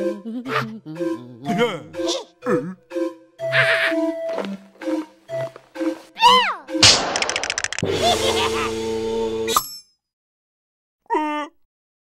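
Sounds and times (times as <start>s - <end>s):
cartoon music: 0.0s - 5.0s, 6.2s - 9.0s
fast rattle: 6.9s - 7.8s.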